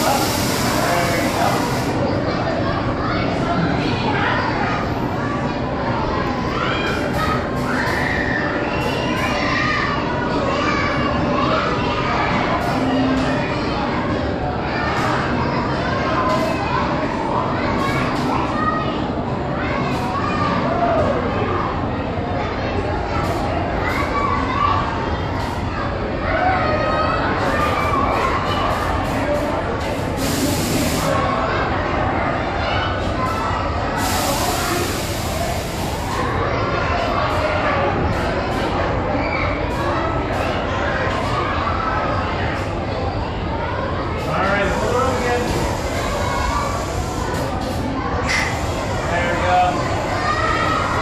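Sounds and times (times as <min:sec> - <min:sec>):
hiss: 0:00.0 - 0:02.0, 0:30.2 - 0:31.2, 0:34.0 - 0:36.2
children chattering and calling: 0:00.0 - 0:51.0
indistinct voices: 0:00.0 - 0:51.0.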